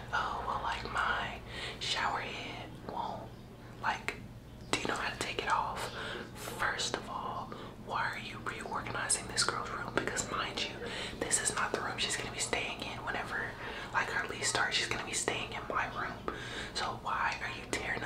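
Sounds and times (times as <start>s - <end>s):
woman whispering: 0.0s - 18.0s.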